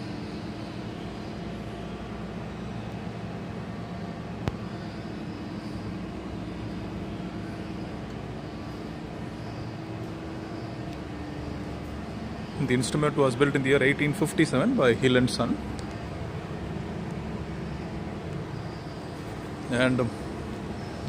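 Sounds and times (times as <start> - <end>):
faint steady tones: 0.0 - 21.0
mechanical hum and rumble: 0.0 - 21.0.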